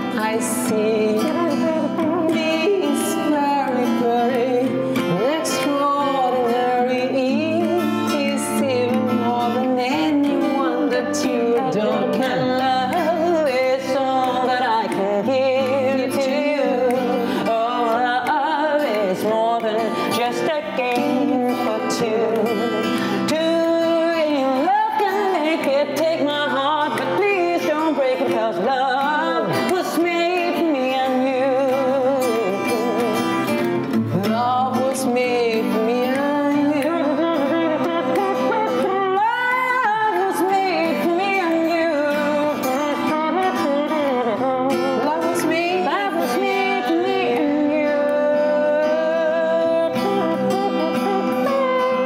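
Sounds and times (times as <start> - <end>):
strummed acoustic guitar: 0.0 - 52.0
woman singing with vibrato: 0.0 - 52.0.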